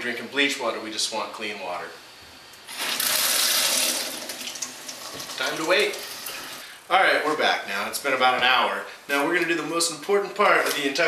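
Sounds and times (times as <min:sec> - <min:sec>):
faucet turned on: 0:02.6 - 0:06.6
water running into metal sink: 0:02.7 - 0:06.6.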